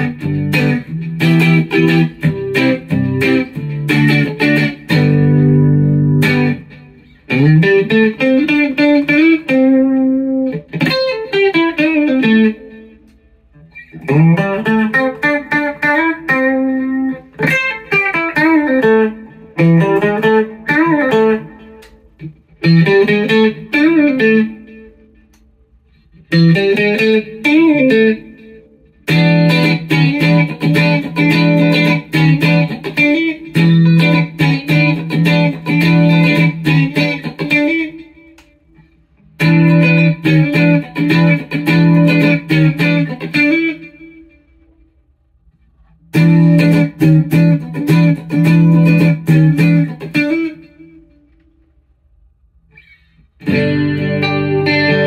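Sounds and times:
electric guitar with string bends: 0.0s - 51.9s, 52.7s - 55.0s.

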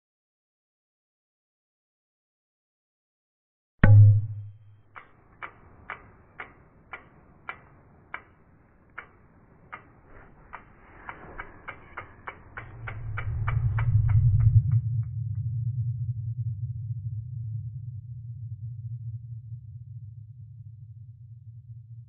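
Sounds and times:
sharp ticks: 3.8s - 14.9s
low rumble: 11.6s - 22.0s.

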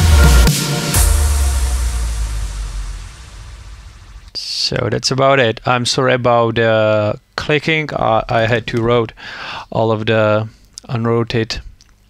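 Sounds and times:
electronic house music: 0.0s - 4.4s.

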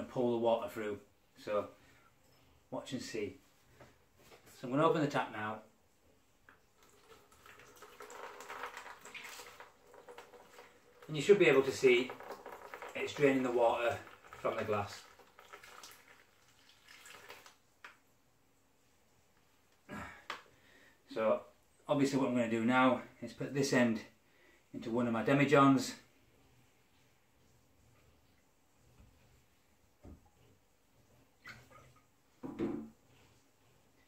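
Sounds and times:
water trickling and dripping: 6.5s - 18.0s
knocks on kitchen worktop: 32.4s - 32.9s.

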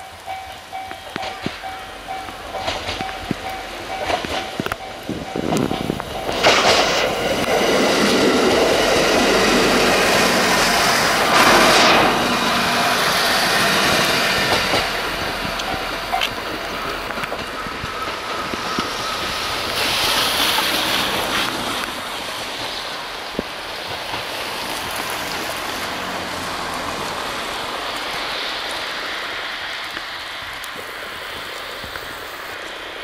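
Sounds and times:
train wheels clattering: 0.0s - 30.7s
train running past on rails: 0.0s - 33.0s.

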